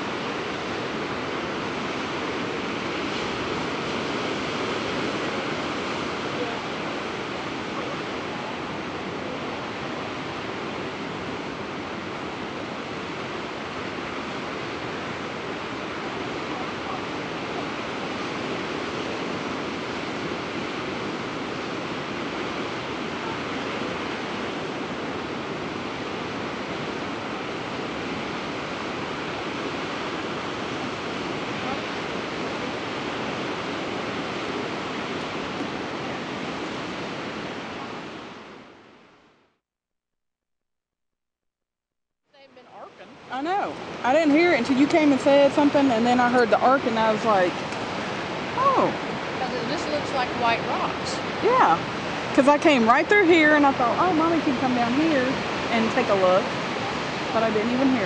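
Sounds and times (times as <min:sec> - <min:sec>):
ocean surf: 0:00.0 - 0:39.4, 0:42.4 - 0:58.0.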